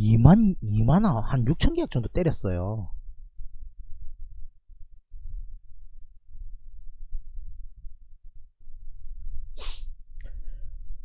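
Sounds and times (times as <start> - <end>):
man sneezing: 9.6 - 9.8.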